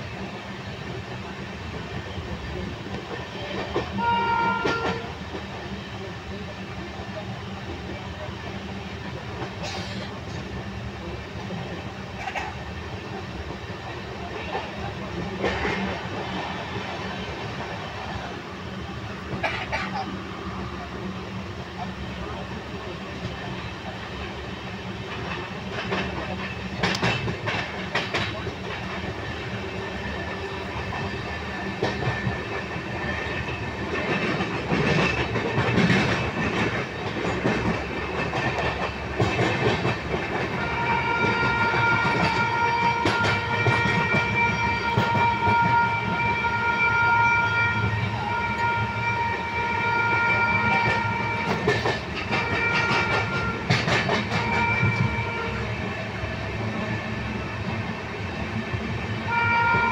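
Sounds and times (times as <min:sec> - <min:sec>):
train rumble: 0:00.0 - 0:59.9
wheels clicking over rail joints: 0:25.1 - 0:29.1, 0:30.8 - 0:45.8, 0:50.7 - 0:55.2.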